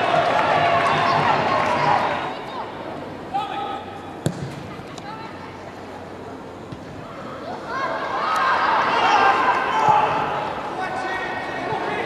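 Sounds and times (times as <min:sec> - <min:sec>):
boot kicking football thud: 0:04.2 - 0:04.6.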